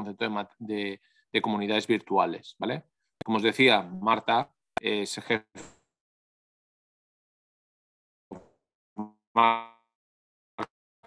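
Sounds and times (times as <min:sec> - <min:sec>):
man's wordless hesitation noises: 0:00.0 - 0:05.4.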